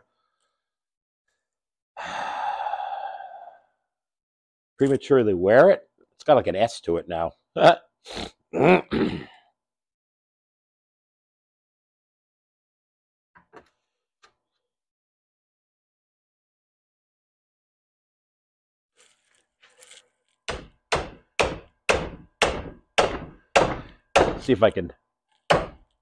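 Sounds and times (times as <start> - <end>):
man sighing: 2.0 - 3.6, 8.2 - 9.4.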